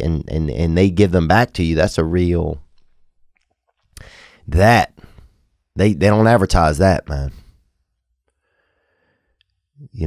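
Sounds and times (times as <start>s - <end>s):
man speaking: 0.0s - 2.7s, 4.4s - 5.1s, 5.8s - 7.4s, 9.8s - 10.0s
faint breath into microphone: 4.0s - 5.5s, 8.3s - 9.4s.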